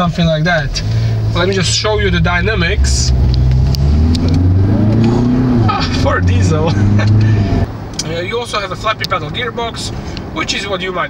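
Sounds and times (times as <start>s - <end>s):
diesel engine accelerating: 0.0s - 10.3s.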